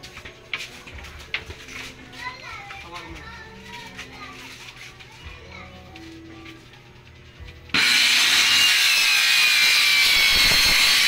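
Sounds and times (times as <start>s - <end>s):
background chatter: 0.0s - 7.7s
faint music: 0.0s - 8.6s
children's voices: 2.1s - 7.0s.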